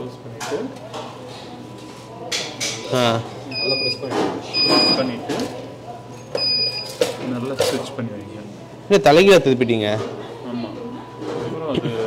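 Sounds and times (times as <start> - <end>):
waffle maker beeping: 6.4 - 6.9.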